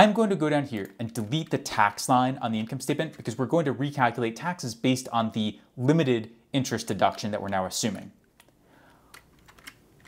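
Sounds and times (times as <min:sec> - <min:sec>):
faint keyboard keystrokes: 0:08.2 - 0:10.0.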